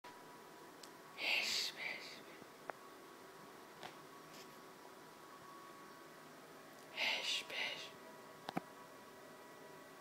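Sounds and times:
person whispering: 1.2s - 2.4s, 6.9s - 8.0s.

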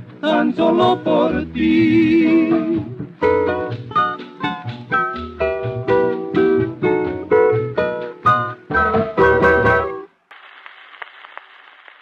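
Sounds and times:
record surface hiss and crackle: 0.0s - 12.0s
soft record clicks: 10.3s - 12.0s.

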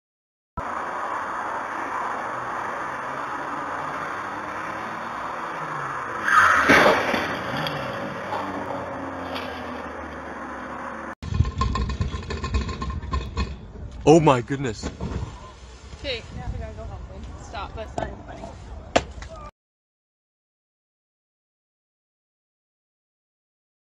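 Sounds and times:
low vehicle rumble: 0.6s - 19.5s
street traffic noise: 0.6s - 19.5s
car collision impact: 6.5s - 8.6s.

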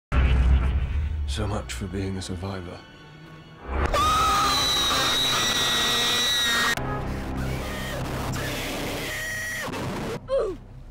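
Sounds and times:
high-pitched scream: 3.9s - 6.8s.

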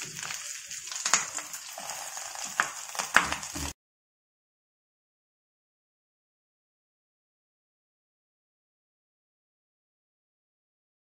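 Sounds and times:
crackles and spits of frying: 0.0s - 3.8s
oil sizzling in a frying pan: 0.0s - 3.8s.

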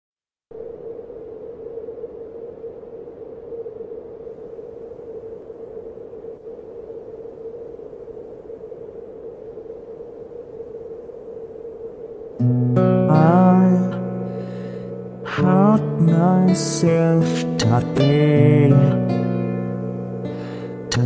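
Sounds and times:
hissy ambient musical drone: 0.5s - 21.0s.

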